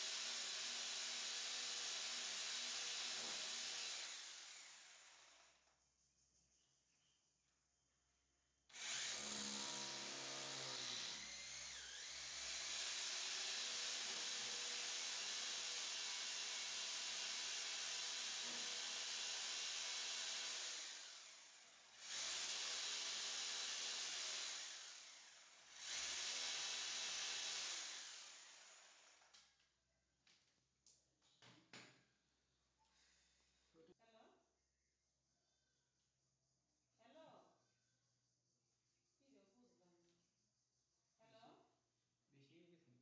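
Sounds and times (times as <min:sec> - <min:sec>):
electric drill boring into wall: 0:00.0 - 0:05.6, 0:08.7 - 0:29.4.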